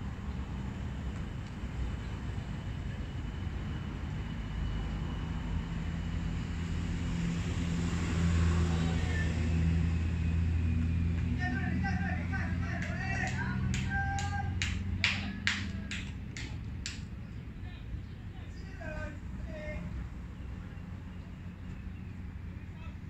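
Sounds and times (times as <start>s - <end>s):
vehicle engine droning: 0.0s - 23.0s
voices calling out: 11.2s - 21.8s
hands clapping: 12.7s - 17.1s.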